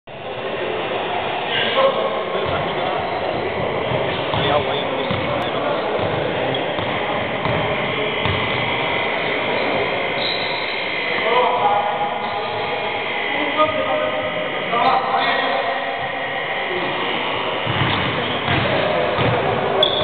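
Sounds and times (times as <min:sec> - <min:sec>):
hubbub of indistinct voices: 0:00.1 - 0:20.0
basketball bouncing on wooden court: 0:03.9 - 0:08.6, 0:17.6 - 0:20.0.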